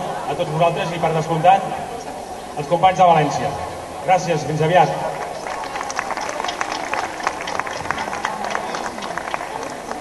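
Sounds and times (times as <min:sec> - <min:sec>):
audience applauding: 0:05.1 - 0:10.0.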